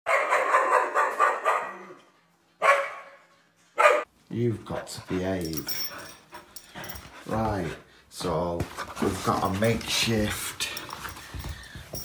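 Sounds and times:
dog barking: 0.1 - 2.0, 2.6 - 4.1.

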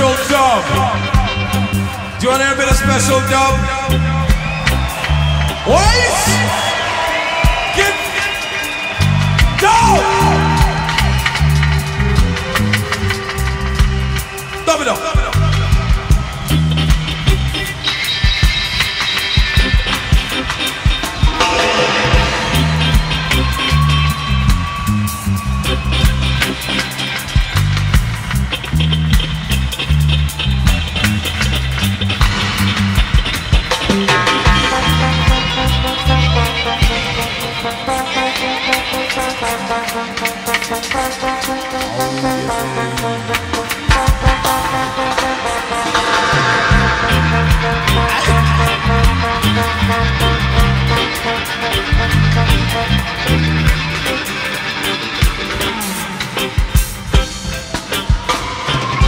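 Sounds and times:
reggae band music: 0.0 - 59.0.

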